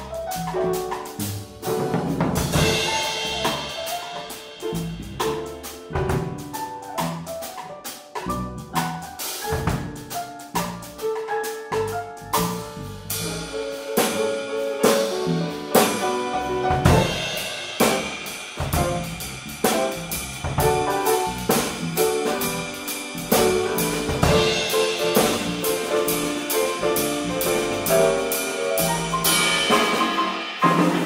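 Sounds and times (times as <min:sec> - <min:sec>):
electric bass: 0:00.0 - 0:07.5, 0:08.2 - 0:11.0, 0:11.7 - 0:30.1
drum kit: 0:00.0 - 0:31.0
grand piano: 0:00.0 - 0:31.0.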